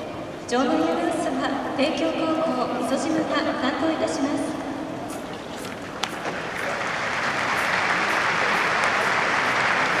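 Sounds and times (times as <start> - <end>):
spectators applauding: 6.6 - 10.0.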